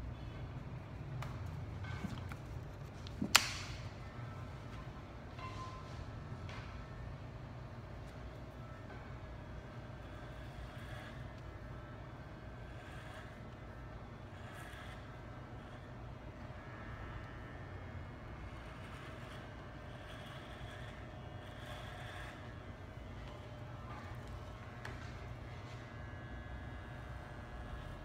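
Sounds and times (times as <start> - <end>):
electric hair clippers buzzing: 9.4 - 28.0.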